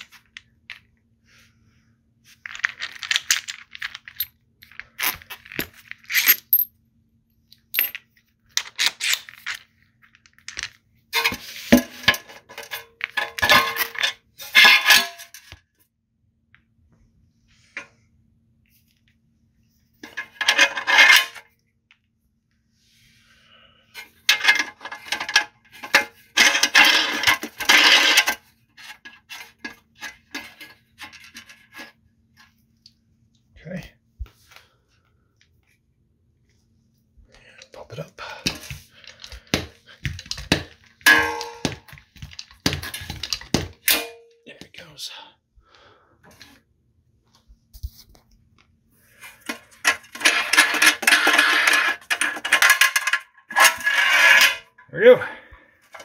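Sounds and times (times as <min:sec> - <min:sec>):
metal parts clinking and scraping: 0:02.3 - 0:06.7, 0:07.5 - 0:15.6, 0:20.0 - 0:21.5, 0:24.0 - 0:32.5, 0:37.6 - 0:44.3, 0:49.1 - 0:54.8.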